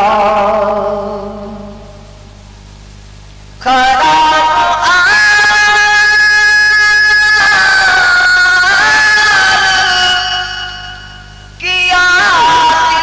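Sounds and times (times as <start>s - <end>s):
man singing a long high note: 0.0s - 2.0s, 3.6s - 13.0s.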